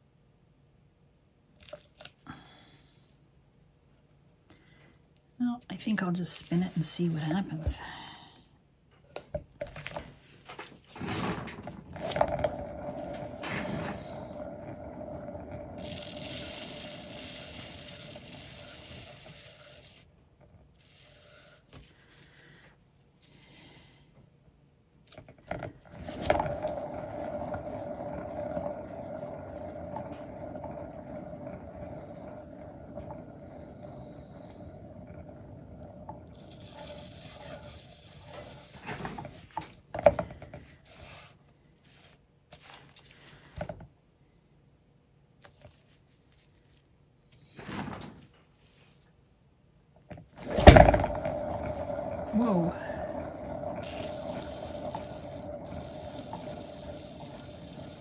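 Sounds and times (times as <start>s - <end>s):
spinning turntable whirring: 10.8s - 21.9s, 25.2s - 41.4s, 50.3s - 58.0s.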